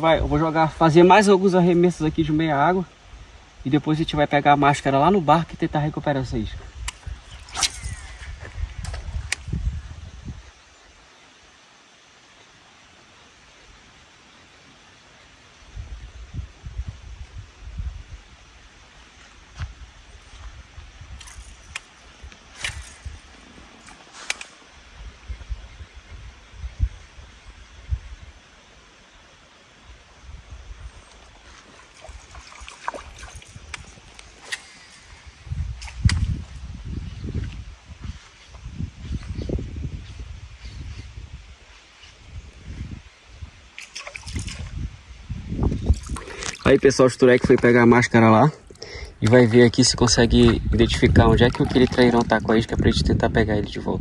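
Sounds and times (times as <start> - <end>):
low rumbling wind gusts: 1.8 - 10.7, 15.6 - 18.9, 24.6 - 28.6, 35.0 - 54.0
water sloshing: 31.2 - 34.8, 49.2 - 52.9.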